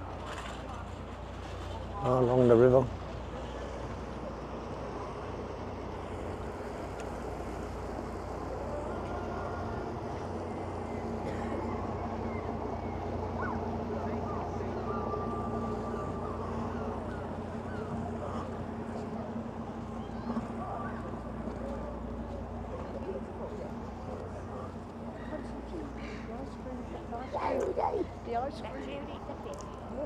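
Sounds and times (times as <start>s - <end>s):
boat engine humming: 0.0s - 30.0s.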